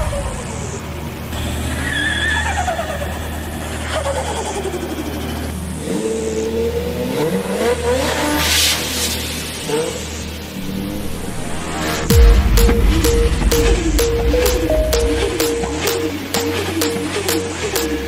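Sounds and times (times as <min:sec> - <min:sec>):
tires squealing: 0:01.4 - 0:09.0
deep bass: 0:12.1 - 0:17.2.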